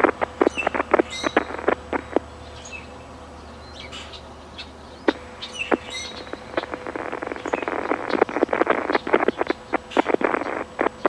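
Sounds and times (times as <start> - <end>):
rapid sharp clicks: 0.0 - 2.3, 5.0 - 11.0
faint bird chirps: 0.0 - 11.0.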